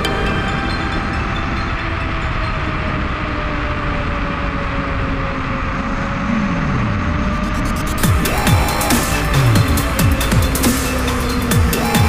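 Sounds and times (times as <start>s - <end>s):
rushing wind: 0.0s - 12.0s.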